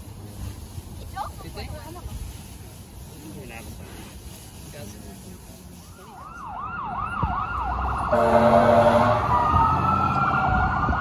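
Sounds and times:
fire truck siren wailing: 0:06.1 - 0:11.0
air horn blast: 0:08.1 - 0:09.5.

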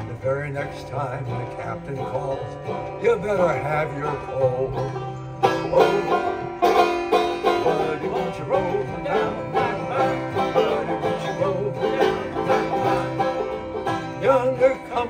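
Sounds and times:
men singing: 0:00.0 - 0:06.6, 0:07.4 - 0:15.0
acoustic guitar: 0:00.0 - 0:15.0
banjo: 0:00.0 - 0:15.0.

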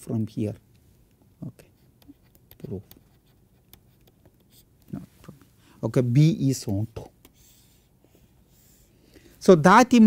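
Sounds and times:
stylus tapping and scratching on tablet: 0:00.4 - 0:05.5, 0:06.5 - 0:08.9.

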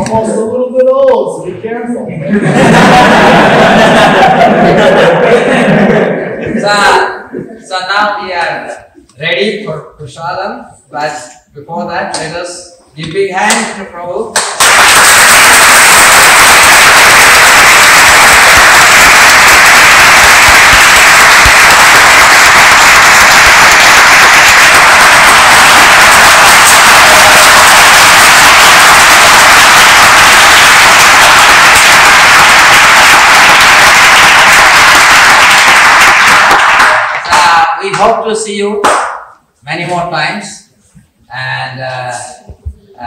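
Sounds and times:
audience applauding: 0:14.4 - 0:37.6.

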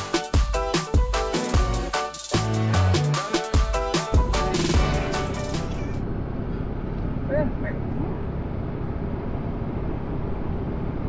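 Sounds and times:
engine and tyres rumbling: 0:05.6 - 0:11.0.

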